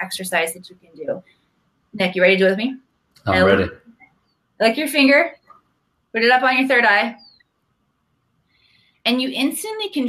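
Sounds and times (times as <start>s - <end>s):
woman speaking: 0.0s - 1.2s, 2.0s - 3.7s, 4.6s - 5.4s, 6.2s - 7.2s, 9.1s - 10.0s
faint breath intake: 8.4s - 9.0s.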